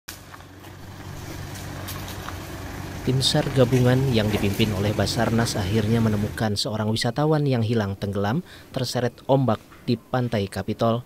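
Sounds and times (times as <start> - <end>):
pickup truck engine humming: 0.1 - 7.0.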